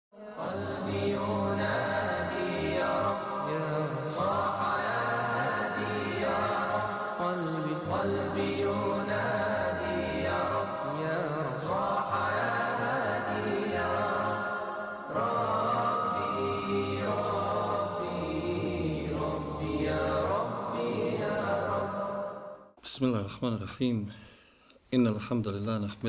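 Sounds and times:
person chanting a slow melody: 0.2 - 22.6.

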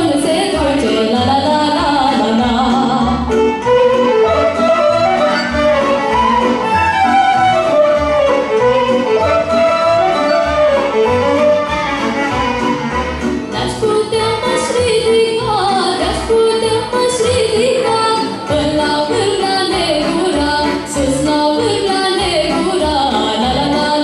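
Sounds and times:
double bass beat: 0.0 - 23.9
fiddle melody: 0.0 - 24.0.

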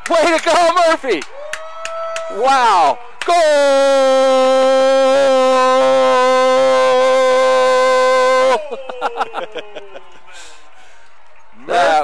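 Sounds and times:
loud goal horn: 3.5 - 8.7.

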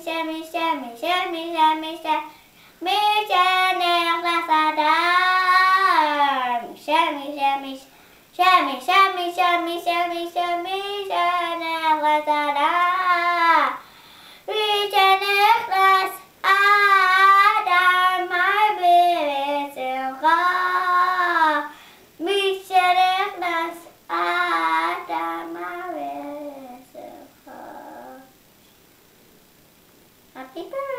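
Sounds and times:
boy singing in high voice: 0.0 - 13.8, 14.4 - 28.4, 30.3 - 30.9
short breaths: 2.3 - 2.8, 7.9 - 8.3, 13.8 - 14.5, 21.7 - 22.2.

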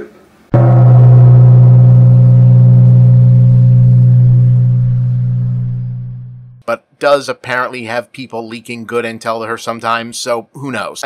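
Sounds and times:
loud low gong-like stinger: 0.5 - 6.6.

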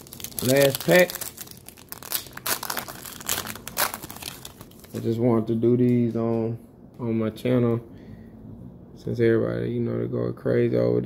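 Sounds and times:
foil wrapper tearing and crinkling: 0.0 - 5.0.

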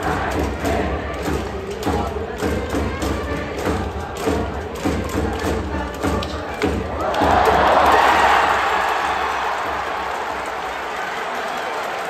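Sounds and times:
crowd noise: 0.0 - 12.0
drums beating: 0.0 - 12.0
fans chanting along: 0.0 - 12.0.

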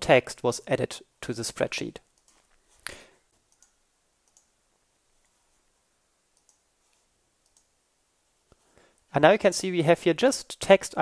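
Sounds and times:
faint computer mouse clicks: 3.5 - 4.5, 6.4 - 7.7.

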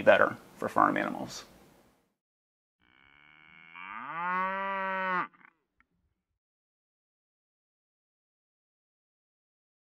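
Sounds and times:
cow mooing: 2.8 - 5.6.

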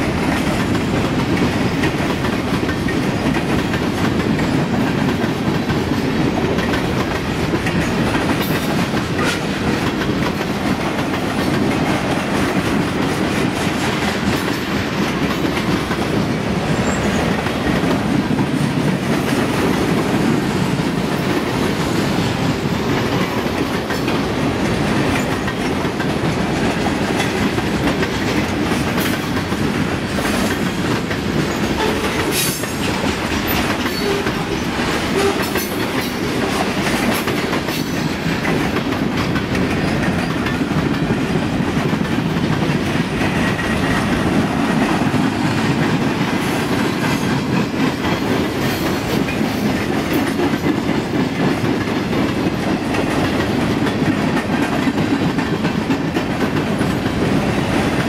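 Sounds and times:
clickety-clack over rail joints: 0.0 - 58.0.

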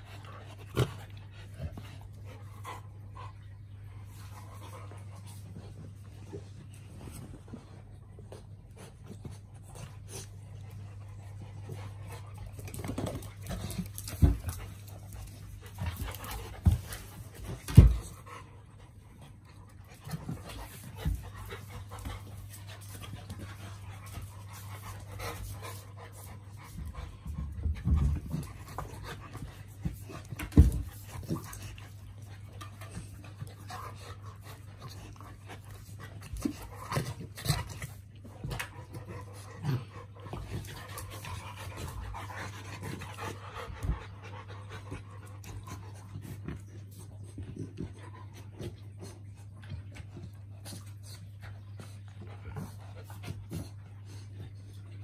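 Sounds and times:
puppies panting and scuffling: 0.0 - 55.0.

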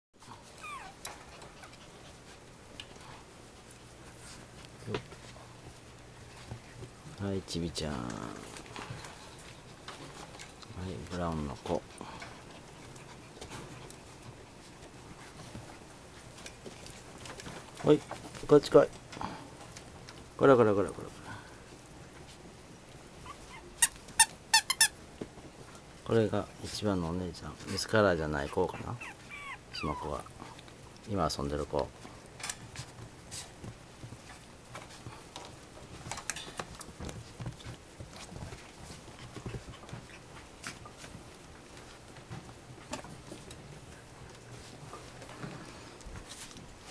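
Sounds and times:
puppies scuffling in wire playpen: 0.2 - 46.9
puppies thumping on bedding: 28.7 - 46.9.

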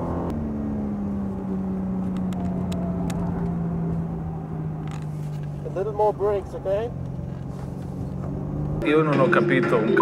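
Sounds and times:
low road rumble: 0.0 - 10.0.

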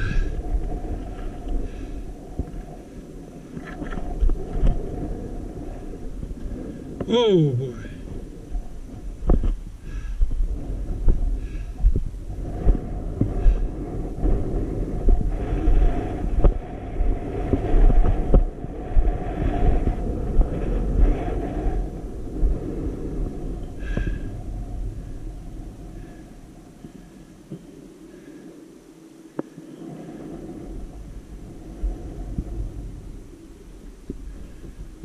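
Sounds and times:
wind buffeting microphone: 0.0 - 28.4, 29.2 - 35.0.

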